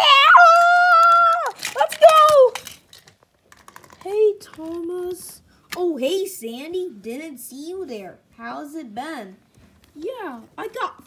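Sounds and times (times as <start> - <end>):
plastic toy trains clicking: 0.4 - 5.4.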